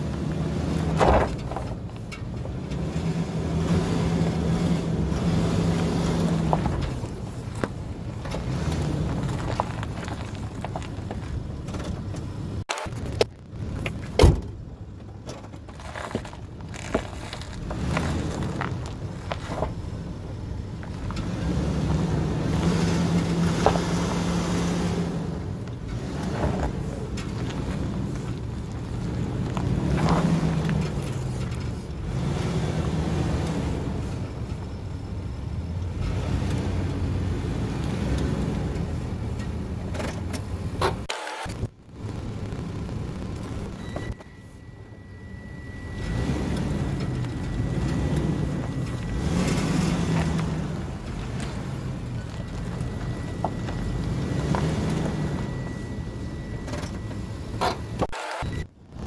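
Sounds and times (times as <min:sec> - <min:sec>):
car engine at low revs: 0:00.0 - 0:59.0.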